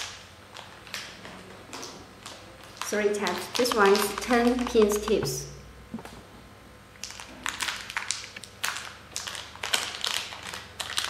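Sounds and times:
foil packets crinkling: 0.0s - 5.2s, 7.0s - 11.0s.

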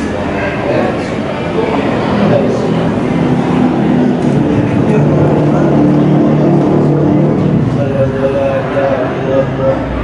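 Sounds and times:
many voices speaking at once: 0.0s - 10.0s.

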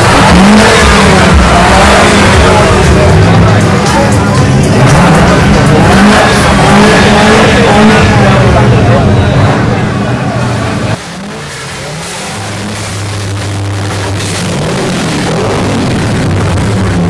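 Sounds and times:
car engine revving: 0.0s - 17.0s.

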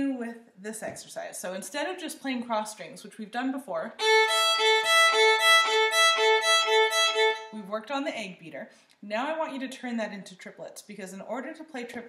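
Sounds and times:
violin bowed across two strings: 4.0s - 7.6s.

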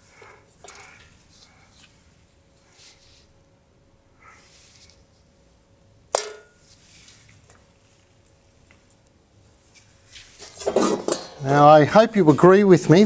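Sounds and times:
sharp clink with ring: 6.2s - 6.6s.

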